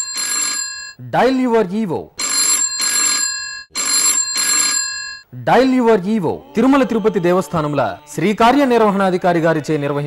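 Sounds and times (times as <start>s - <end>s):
telephone bell ringing: 0.0s - 1.0s, 2.2s - 5.3s.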